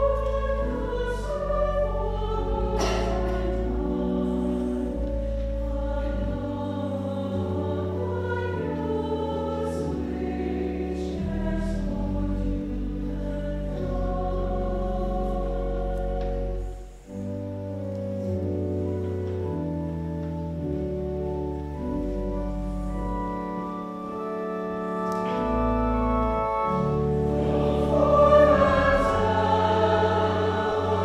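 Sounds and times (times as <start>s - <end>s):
choir singing: 0.0s - 16.9s, 26.2s - 31.0s
organ with low bass notes: 0.0s - 31.0s.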